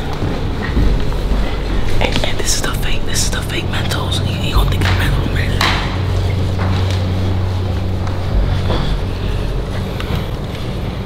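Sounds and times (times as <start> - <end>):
background music with low bass: 0.0 - 11.0
person whispering: 2.0 - 6.2.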